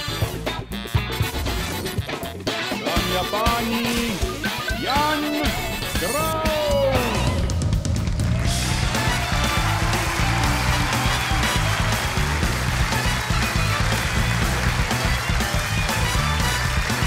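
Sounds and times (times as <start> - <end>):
rock band music: 0.0 - 17.0
audience clapping: 7.8 - 17.0.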